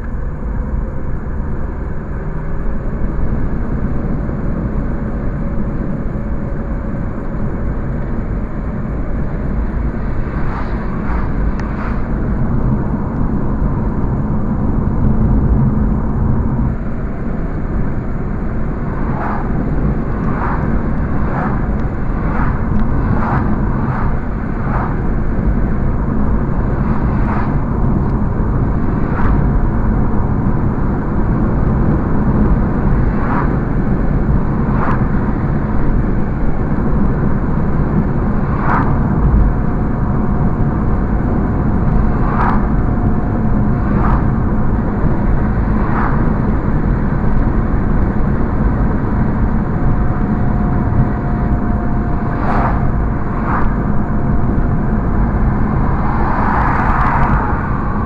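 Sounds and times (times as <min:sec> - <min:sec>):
car engine and tyre rumble: 0:00.0 - 0:58.0.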